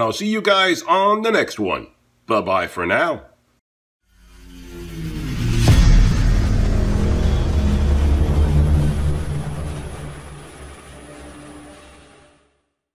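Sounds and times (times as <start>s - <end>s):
deep rumbling drone: 4.1s - 12.4s.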